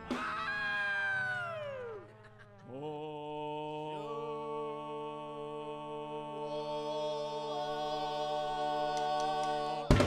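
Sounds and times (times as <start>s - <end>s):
drums and guitars: 0.0s - 0.7s.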